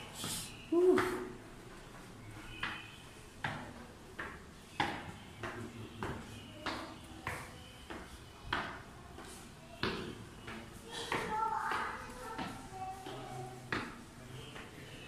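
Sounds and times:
footsteps on concrete stairs: 0.2 - 14.9.

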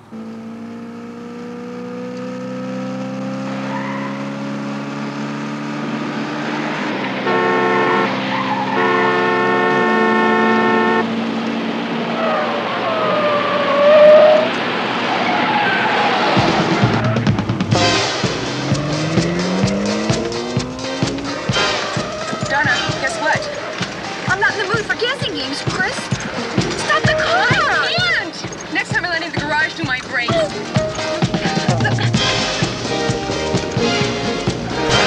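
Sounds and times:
car engine rising in pitch: 0.0 - 25.3
car horn blaring: 7.1 - 11.2, 13.7 - 14.6, 16.9 - 28.4, 33.8 - 35.0
tyres squealing: 7.4 - 10.9, 12.2 - 35.0.

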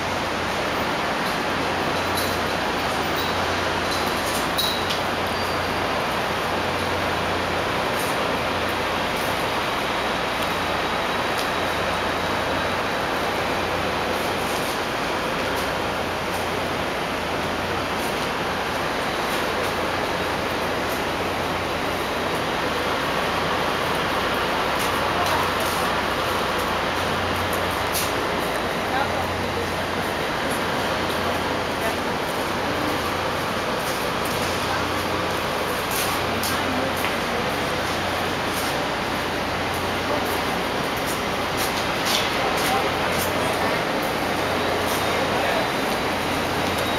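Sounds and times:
city street noise: 0.0 - 46.9.

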